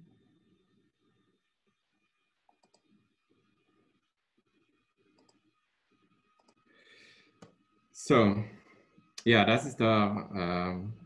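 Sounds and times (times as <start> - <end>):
soft computer mouse clicks: 2.5 - 2.9, 5.2 - 5.4, 6.4 - 6.6.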